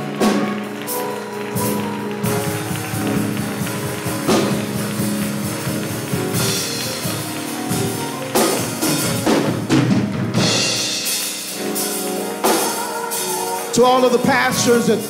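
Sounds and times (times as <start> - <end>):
drum kit steady beat: 0.0 - 15.0
held keyboard chords: 0.0 - 15.0.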